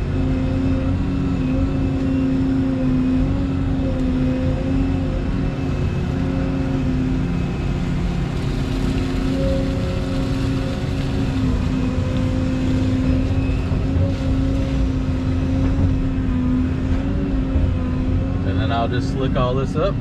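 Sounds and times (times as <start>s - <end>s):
excavator diesel engine: 0.0s - 20.0s.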